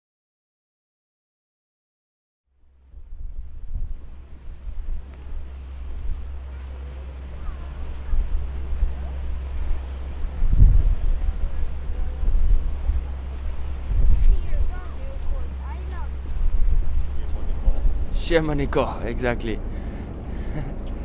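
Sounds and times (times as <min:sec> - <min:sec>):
wind buffeting microphone: 0:02.7 - 0:21.0
sea water wash: 0:03.2 - 0:21.0.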